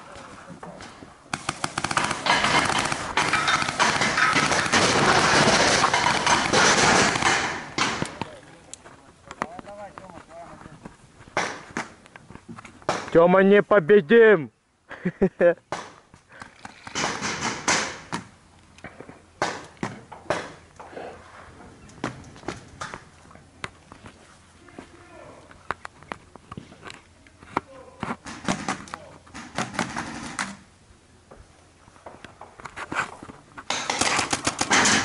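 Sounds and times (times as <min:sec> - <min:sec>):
paintball markers firing: 0:01.3 - 0:08.3.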